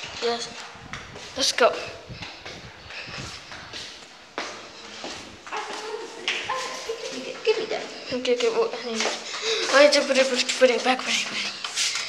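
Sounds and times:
footsteps on hard floor: 0:02.2 - 0:12.0.

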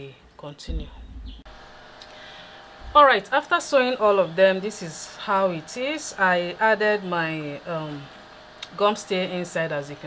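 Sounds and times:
faint background hum: 0:00.0 - 0:10.0
person speaking: 0:00.4 - 0:01.4, 0:02.8 - 0:03.7
low rumble: 0:00.7 - 0:01.5, 0:02.8 - 0:03.2.

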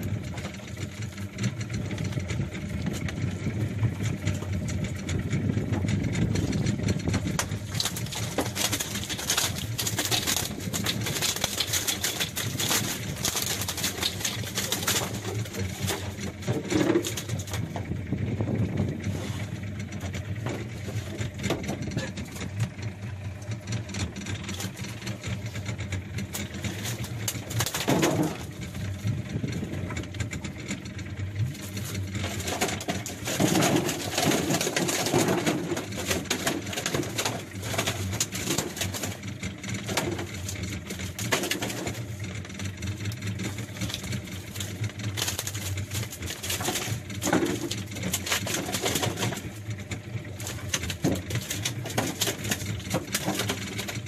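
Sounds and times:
small boat engine running: 0:00.0 - 0:54.0.

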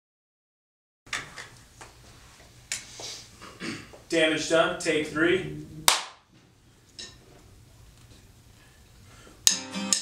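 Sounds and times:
steady low hum: 0:01.6 - 0:09.4.

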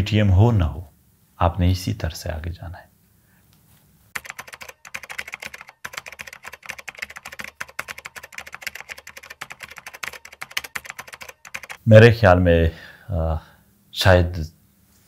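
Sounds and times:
keyboard key clicks: 0:04.2 - 0:11.8.

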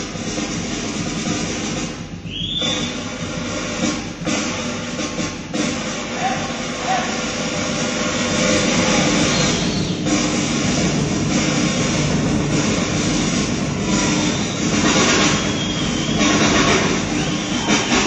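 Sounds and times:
cymbals crashing: 0:00.0 - 0:18.0
fast drumming: 0:00.0 - 0:18.0.

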